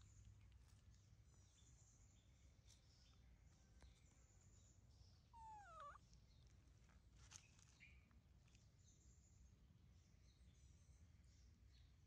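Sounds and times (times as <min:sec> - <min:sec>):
baby macaque call: 0:05.4 - 0:06.0.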